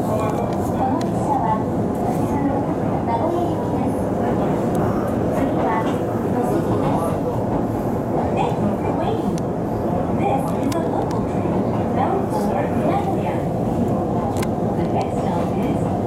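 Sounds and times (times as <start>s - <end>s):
train carriage rumbling on rails: 0.0s - 16.0s.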